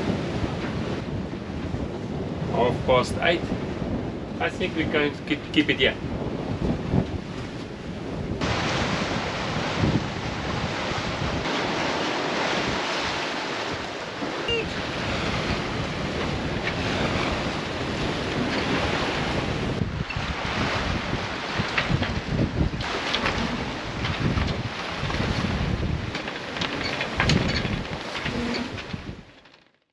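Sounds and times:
wind buffeting microphone: 0.0 - 29.3
waves rushing along hull: 0.0 - 29.5.

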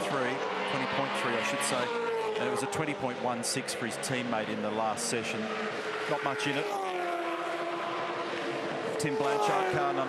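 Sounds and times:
race car engine at high revs: 0.0 - 10.0.

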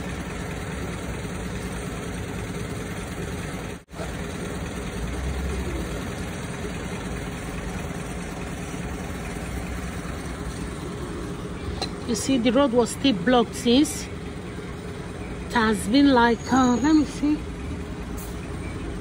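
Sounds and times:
truck engine idling: 0.0 - 19.0.

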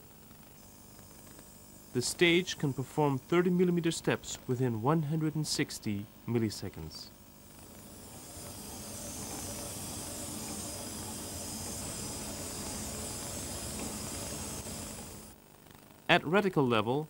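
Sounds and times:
machine hiss: 0.0 - 15.4.

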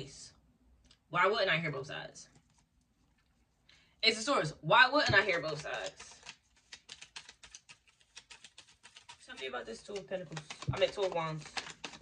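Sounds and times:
cards clicking in hands: 5.2 - 12.0.

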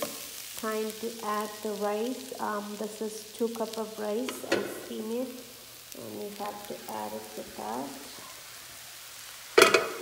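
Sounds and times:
food sizzling in a frying pan: 0.0 - 10.0
clatter against pan: 9.6 - 10.0.

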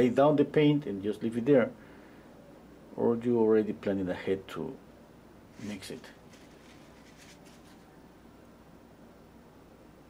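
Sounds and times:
paintbrush swishes: 5.6 - 7.9.

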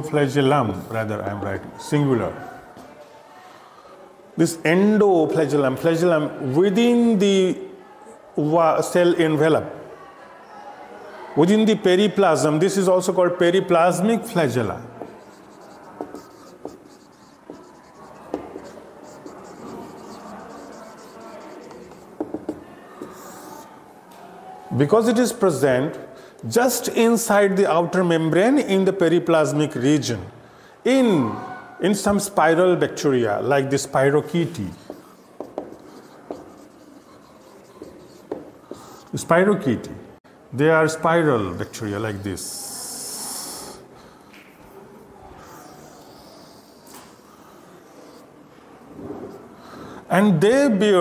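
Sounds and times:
marker rubbing on whiteboard: 13.5 - 23.8, 33.3 - 39.5, 41.3 - 43.8, 45.2 - 48.3
marker tip ticking on board: 15.0 - 23.7, 34.8 - 39.1.

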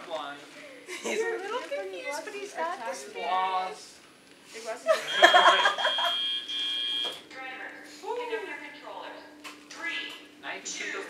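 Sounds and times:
electronic buzzer tone: 5.1 - 7.2.

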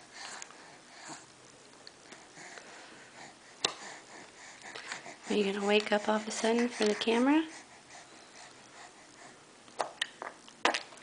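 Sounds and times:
sniffing and breathing: 2.1 - 9.5.

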